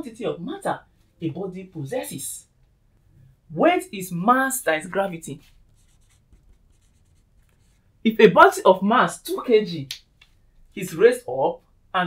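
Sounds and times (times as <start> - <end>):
marker scratching on whiteboard: 4.8 - 8.0.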